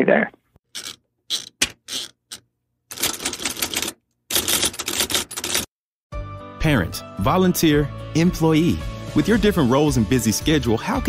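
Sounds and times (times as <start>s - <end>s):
typewriter keys clacking: 2.9s - 5.7s.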